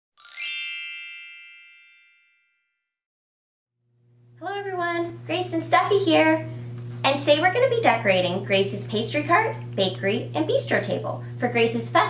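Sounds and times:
bright bell-like chime: 0.2s - 2.9s.

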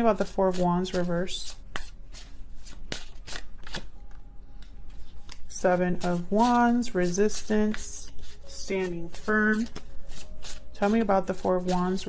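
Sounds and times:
cards being shuffled: 0.2s - 12.0s.

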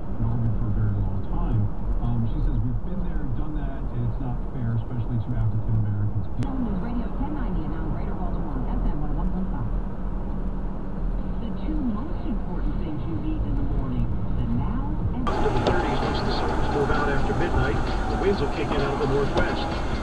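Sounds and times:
car road and engine rumble: 0.0s - 20.0s
faint radio talk voices: 0.2s - 9.6s, 11.4s - 20.0s.

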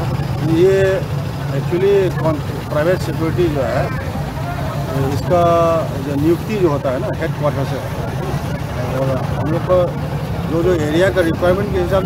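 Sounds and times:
diesel truck engine rumbling: 0.0s - 12.0s
man speaking: 0.4s - 12.0s.

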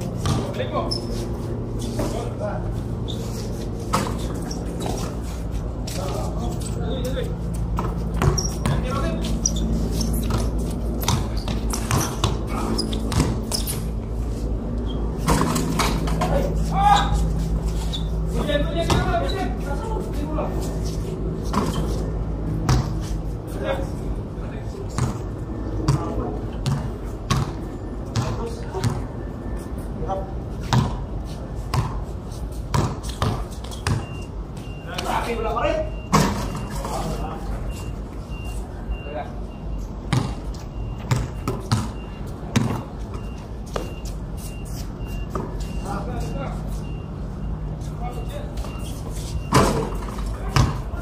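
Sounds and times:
basketball bouncing on concrete: 0.0s - 0.7s, 7.5s - 14.0s, 18.6s - 19.3s, 22.6s - 23.0s, 24.9s - 29.1s, 30.6s - 31.1s, 31.7s - 32.0s, 32.6s - 34.1s, 40.1s - 42.9s, 49.5s - 51.0s
players calling out: 16.1s - 20.6s.

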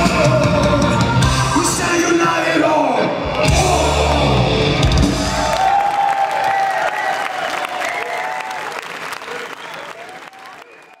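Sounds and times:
crowd applauding and cheering: 3.3s - 11.0s.

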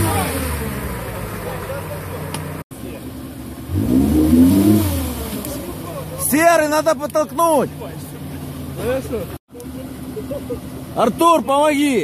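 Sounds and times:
car engine running at low revs: 0.0s - 12.0s.

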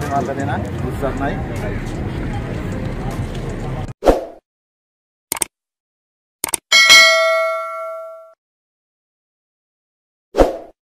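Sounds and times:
bright bell ding: 6.7s - 8.4s.

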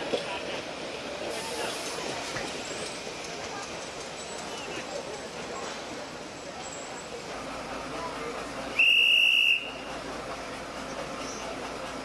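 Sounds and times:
hand whistle blast: 8.8s - 9.8s.

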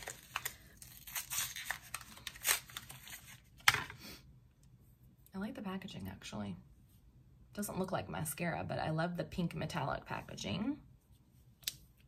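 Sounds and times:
packaging tearing and rustling: 0.0s - 3.6s.

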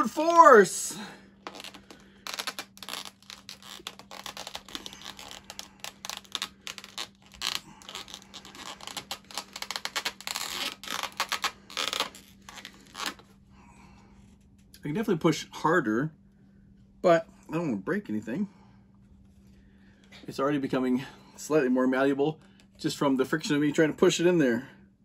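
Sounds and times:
rubber parts scraping and creaking: 1.4s - 13.3s.

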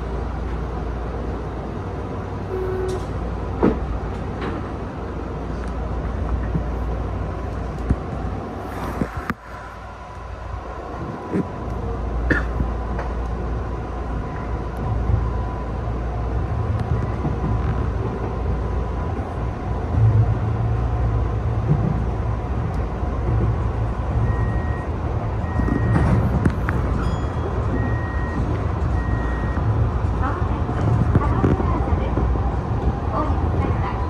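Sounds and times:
train wheels rumbling on rails: 0.0s - 34.0s.

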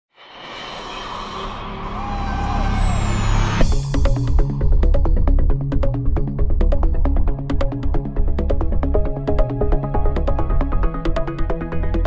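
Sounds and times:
rising whoosh: 0.2s - 4.0s
high whistle gliding downward: 1.2s - 3.7s.

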